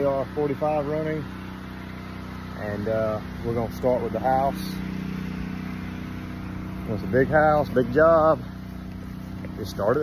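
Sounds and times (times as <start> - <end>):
engine-driven pump humming: 0.0 - 10.0.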